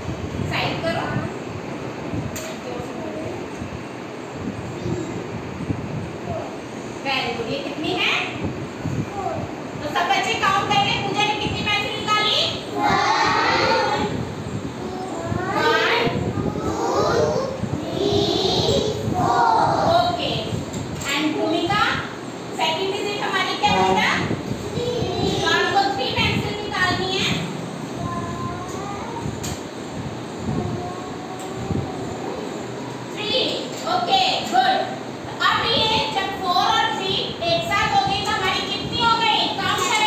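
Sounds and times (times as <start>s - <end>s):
steady rumbling: 0.0s - 40.0s
children's sing-song voices: 12.7s - 20.2s, 23.8s - 25.8s, 30.4s - 32.9s.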